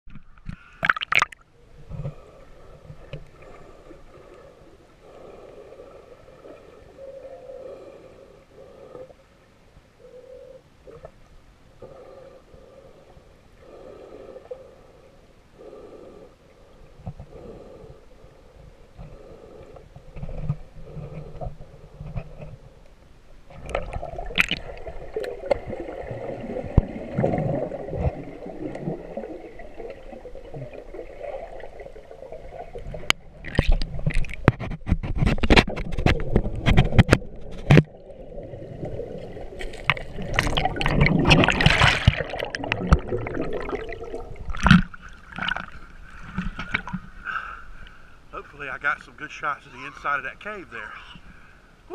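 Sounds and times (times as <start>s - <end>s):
underwater water gurgling: 0.1s - 9.3s, 23.5s - 47.2s.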